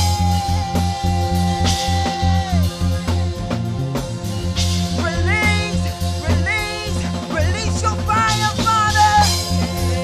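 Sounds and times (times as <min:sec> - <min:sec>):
person singing: 0:00.0 - 0:03.3, 0:04.9 - 0:10.0
drum kit beat: 0:00.0 - 0:10.0
electric bass: 0:00.0 - 0:10.0
keyboard: 0:00.0 - 0:10.0.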